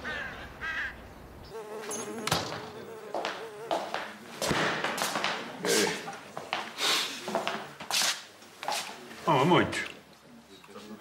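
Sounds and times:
wavering insect-like buzz: 1.5 - 4.0.

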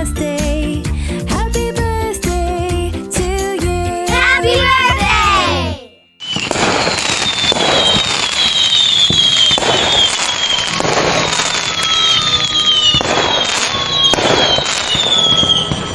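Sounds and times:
fireworks crackling: 4.1 - 15.9
falling firework whistles: 6.2 - 15.9
firework bangs: 6.2 - 15.9.

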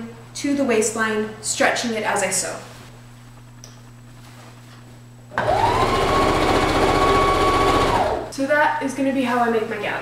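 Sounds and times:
rapid even stitching: 5.4 - 8.3
sewing machine motor whine: 5.4 - 8.3.

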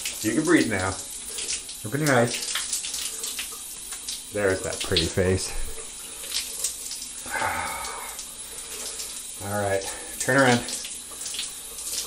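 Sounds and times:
water running and splashing: 0.0 - 12.0
man murmuring: 7.3 - 8.2.

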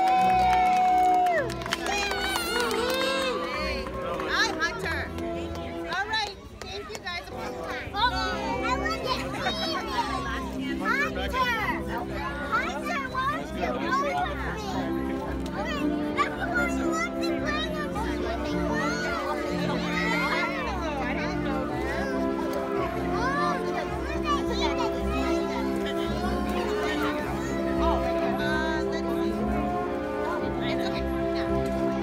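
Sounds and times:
music with held notes: 0.0 - 32.0
young children chattering: 2.6 - 32.0.

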